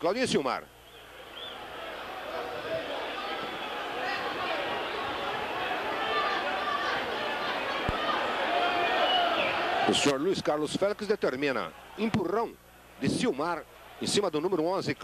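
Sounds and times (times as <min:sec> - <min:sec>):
stadium crowd shouting: 0:00.8 - 0:15.0.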